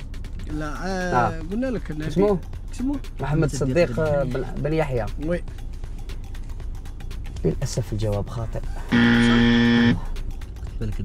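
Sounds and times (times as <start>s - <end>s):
wrong-answer buzzer: 8.9s - 10.1s.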